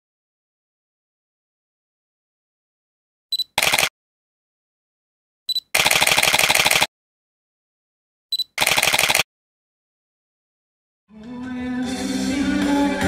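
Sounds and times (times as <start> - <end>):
camera focus beep: 3.3 - 3.9, 5.5 - 6.9, 8.3 - 9.2
rapid camera shutter clicks: 3.4 - 3.9, 5.6 - 6.9, 8.5 - 9.3.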